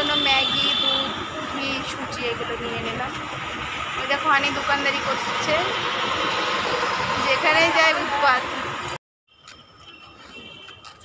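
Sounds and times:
vehicle engine: 0.0 - 9.0
road noise: 0.0 - 11.0.

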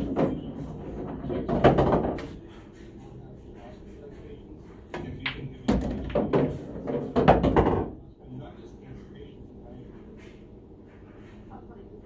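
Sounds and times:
pool cue striking ball: 0.0 - 2.4, 4.9 - 8.0
sharp knocks: 5.0 - 8.0.

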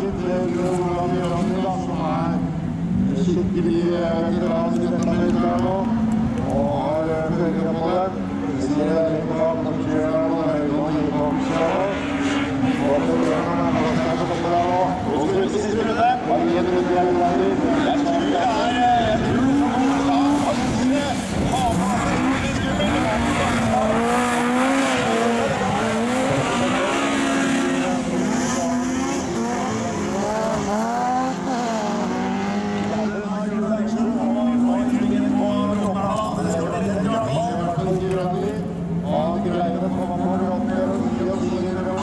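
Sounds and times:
racing car engines revving: 0.0 - 42.0.

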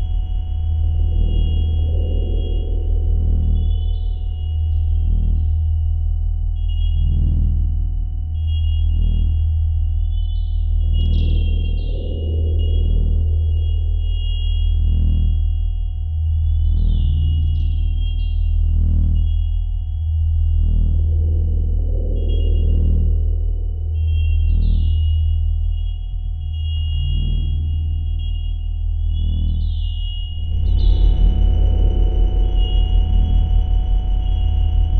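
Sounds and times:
deep electronic drone: 0.0 - 34.9
dull pulse: 0.0 - 34.9.

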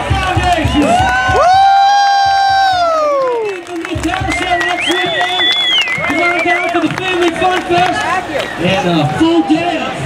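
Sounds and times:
crowd cheering: 0.0 - 10.0
long high whoo shout: 0.8 - 3.4.

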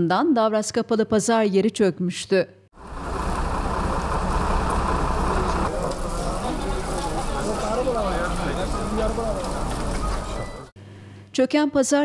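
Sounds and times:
low outdoor rumble: 2.8 - 10.7
indistinct voices: 3.6 - 10.7.

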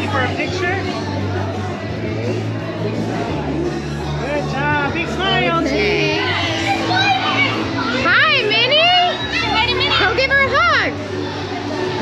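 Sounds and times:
children and adults chattering: 0.0 - 12.0
faint background music: 0.0 - 12.0.

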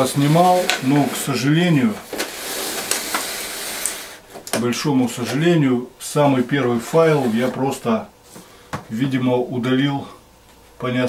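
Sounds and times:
plastic tray rustling and scraping: 0.0 - 4.4, 6.3 - 8.4.

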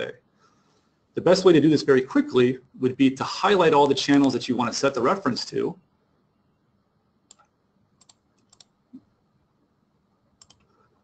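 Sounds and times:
mouse and keyboard clicks: 10.4 - 10.7.

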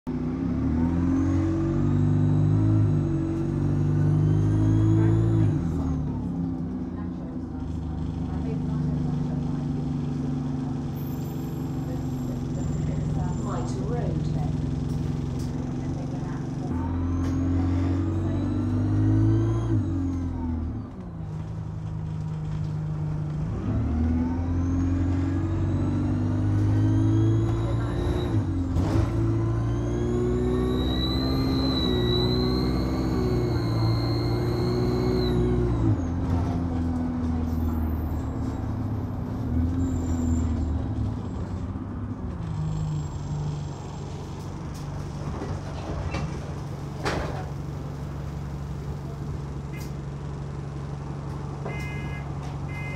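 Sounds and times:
bus engine accelerating with turbo whine: 0.1 - 52.9.

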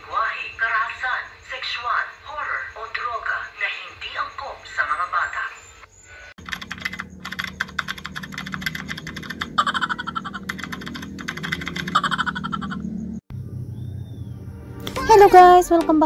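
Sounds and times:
keyboard typing clicks: 6.4 - 12.2.

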